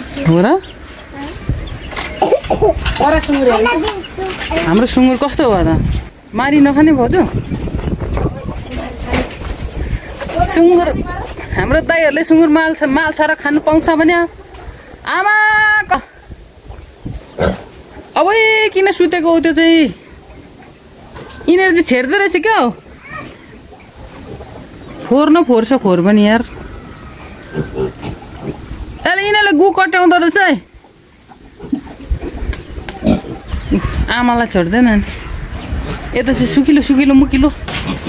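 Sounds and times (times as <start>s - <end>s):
pig grunting: 17.3s - 17.8s, 27.2s - 28.8s, 31.2s - 34.0s, 37.6s - 38.0s.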